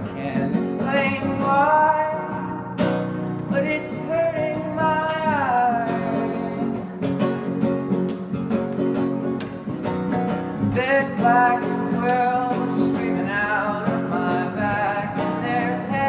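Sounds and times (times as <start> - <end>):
person singing: 0.0 - 2.8, 3.5 - 7.2, 10.6 - 16.0
acoustic guitar strumming: 0.0 - 16.0.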